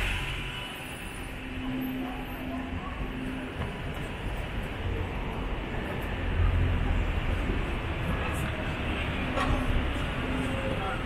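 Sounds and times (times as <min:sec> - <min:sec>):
traffic engine rumble: 0:00.0 - 0:11.0.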